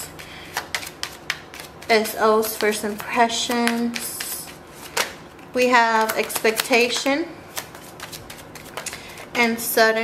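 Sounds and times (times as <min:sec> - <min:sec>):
cards being shuffled: 0:00.1 - 0:09.4
person speaking: 0:01.8 - 0:04.7, 0:05.5 - 0:07.4, 0:08.8 - 0:10.0.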